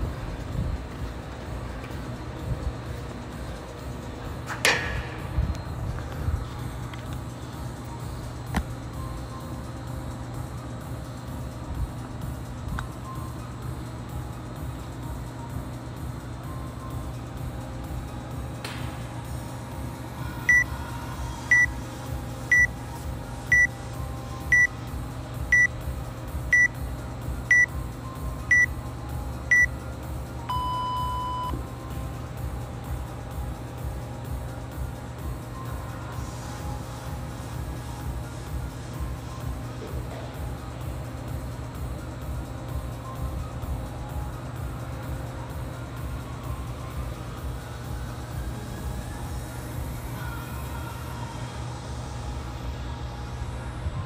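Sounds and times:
longer lower beep: 20.5s - 20.7s, 25.5s - 25.7s, 26.5s - 26.7s, 30.5s - 31.6s
short high timer beeps: 26.5s - 26.7s.

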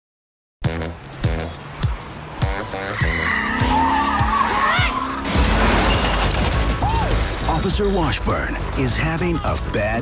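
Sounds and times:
car tyres squealing: 1.5s - 7.3s.

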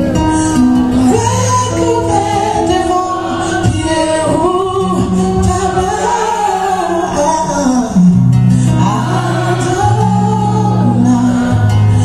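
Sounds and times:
acoustic guitar: 0.0s - 12.0s
woman singing gospel song: 0.4s - 8.1s, 8.7s - 12.0s.

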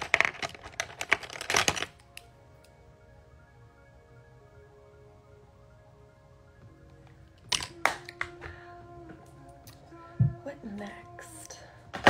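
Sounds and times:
makeup items clacking: 0.0s - 2.3s, 7.4s - 8.6s
faint background music: 0.0s - 12.0s.

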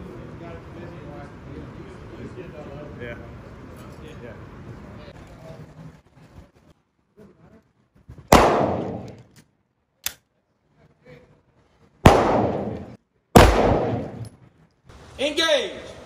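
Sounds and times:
pistol shots with echo: 8.3s - 9.3s, 12.0s - 14.3s.

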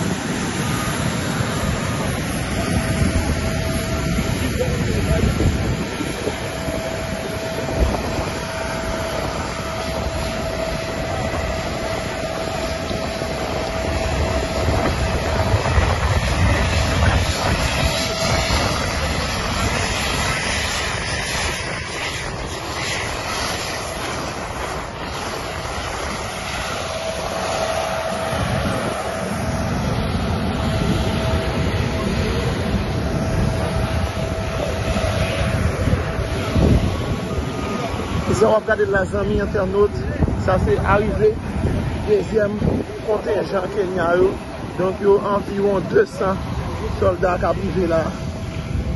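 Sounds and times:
jet engine roar: 0.0s - 48.9s
jet engine whine: 0.0s - 48.9s.

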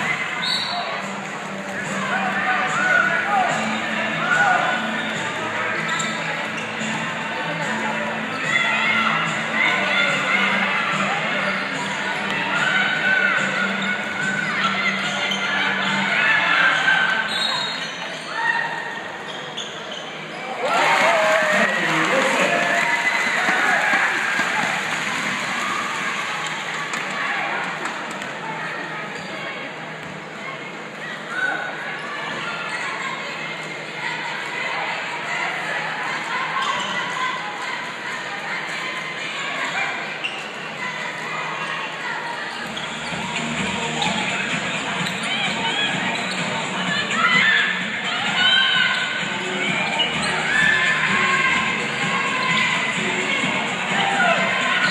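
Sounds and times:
crowd chatter and shouts: 0.0s - 54.9s.

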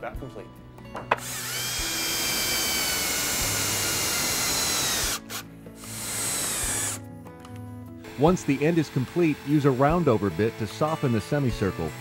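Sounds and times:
cordless drill boring into wood: 1.2s - 7.0s, 8.0s - 12.0s.

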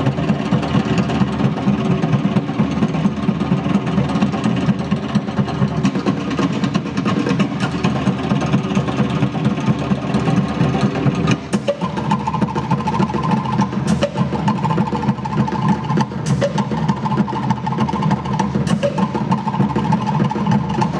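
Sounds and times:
fast drum rhythm: 0.0s - 20.9s.

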